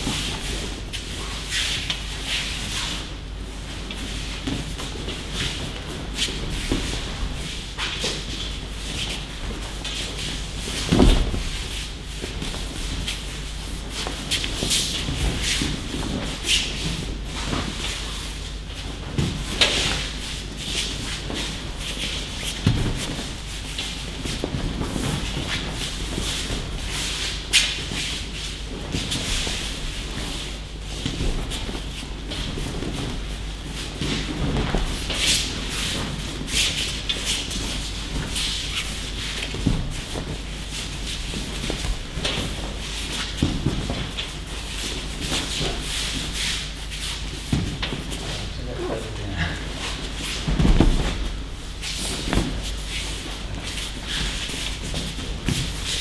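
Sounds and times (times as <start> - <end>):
bare feet sliding on mats: 0.0 - 56.0
uniforms rustling: 0.0 - 56.0
bodies thumping onto mats: 4.3 - 13.1, 20.9 - 27.9, 28.7 - 46.4, 47.2 - 48.5, 49.4 - 56.0.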